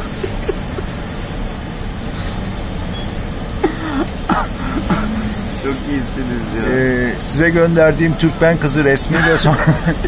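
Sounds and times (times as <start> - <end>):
man laughing stifled: 0.0 - 1.2, 3.6 - 6.0, 9.0 - 10.0
city street traffic rumble: 0.0 - 10.0.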